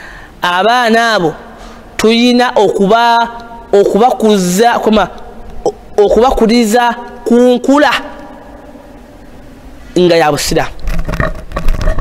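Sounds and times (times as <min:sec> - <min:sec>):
man speaking into a microphone: 0:00.4 - 0:08.9, 0:09.9 - 0:10.8.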